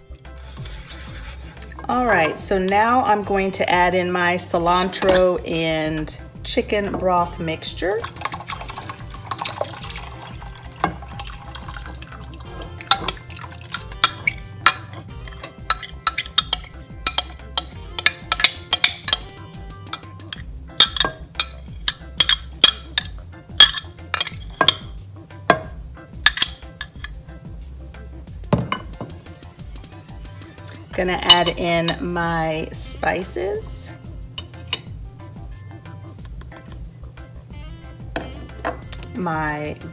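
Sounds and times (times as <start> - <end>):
background music: 0.0 - 39.9
liquid pouring into a pot: 8.0 - 17.3
glass jug clinking against pot: 8.1 - 19.3, 19.9 - 27.2.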